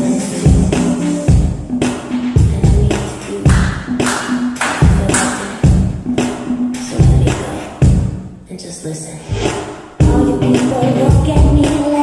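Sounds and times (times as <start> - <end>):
dance music with heavy bass beat: 0.0 - 8.2, 9.6 - 12.0.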